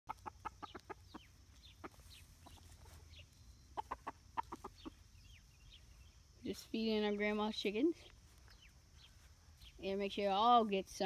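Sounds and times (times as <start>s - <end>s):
chickens clucking: 0.1s - 7.4s
faint higher bird calls: 8.3s - 10.0s.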